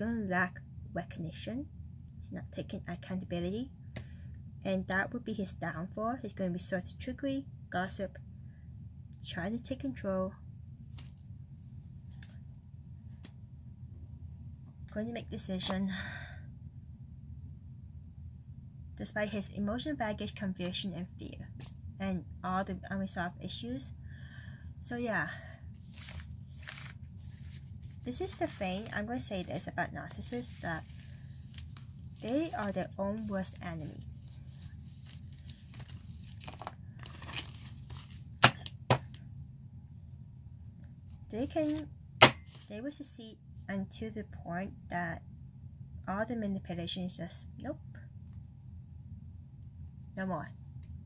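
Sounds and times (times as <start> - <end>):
low room hum: 0.0 - 51.0.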